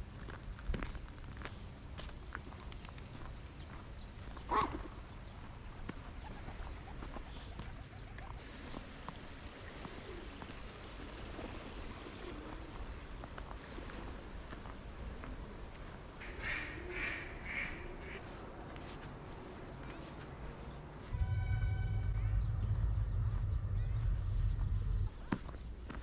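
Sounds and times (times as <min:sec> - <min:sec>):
small dog barking: 0:04.5 - 0:04.8.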